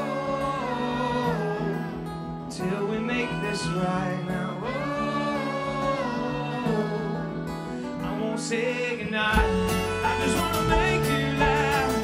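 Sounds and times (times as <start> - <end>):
electric guitar: 0.0 - 12.0
rock band playing live: 9.2 - 12.0.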